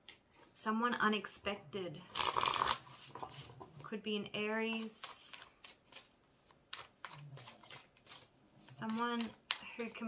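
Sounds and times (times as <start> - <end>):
cards being shuffled: 2.1 - 3.7, 4.7 - 10.0.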